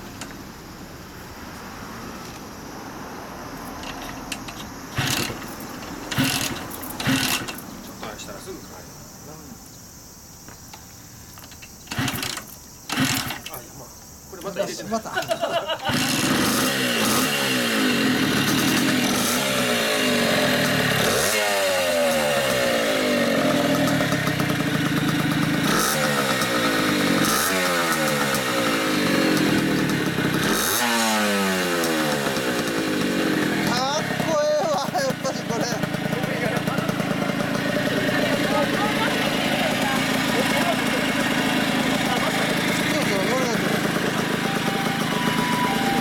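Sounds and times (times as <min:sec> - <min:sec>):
two-stroke engine revving: 0:04.9 - 0:08.6, 0:11.8 - 0:13.6, 0:15.2 - 0:46.0
two-stroke engine idling: 0:04.9 - 0:08.9, 0:11.6 - 0:13.6, 0:14.7 - 0:46.0.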